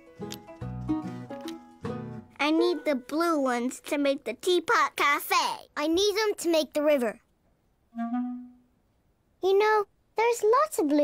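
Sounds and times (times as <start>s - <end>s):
clarinet-like woodwind note: 8.0s - 8.7s.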